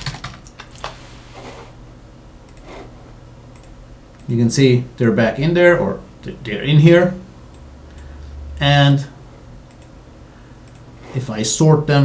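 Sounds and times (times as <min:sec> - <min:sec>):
computer keyboard keys clicking: 0:00.0 - 0:01.0.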